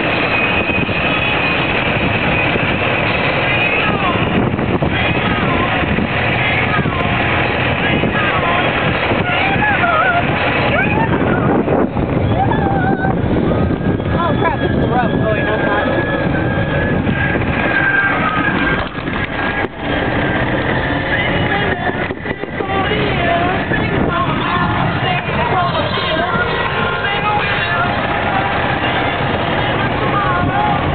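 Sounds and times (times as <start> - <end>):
golf cart rumbling: 0.0 - 30.9
indistinct voices talking: 0.0 - 30.9
thin steady whine: 0.0 - 30.9
wind buffeting microphone: 0.0 - 30.9.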